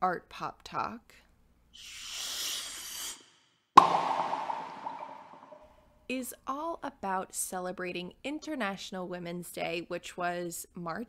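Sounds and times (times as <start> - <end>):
sharp hit with ringing tail: 3.8 - 5.6
short warbling tones: 3.8 - 5.6.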